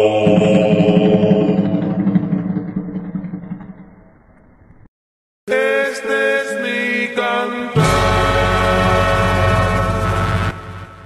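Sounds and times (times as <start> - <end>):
low muffled drone: 0.2 - 4.9.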